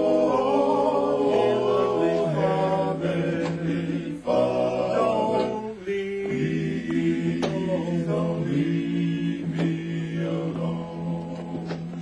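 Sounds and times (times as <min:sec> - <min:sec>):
male quartet singing a cappella: 0:00.0 - 0:12.0.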